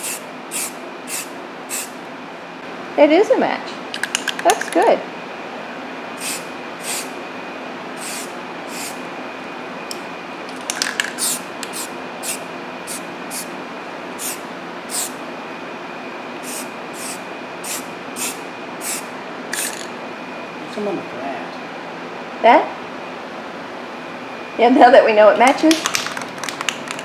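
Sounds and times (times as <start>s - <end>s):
spray-paint can hissing: 0.0s - 2.0s, 6.2s - 7.1s, 8.0s - 9.0s, 11.0s - 13.5s, 14.2s - 15.2s, 16.4s - 19.9s.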